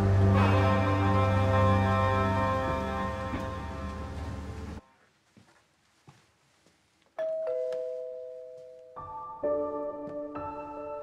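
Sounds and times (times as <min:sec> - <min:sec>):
two-tone doorbell chime: 0:07.2 - 0:09.4.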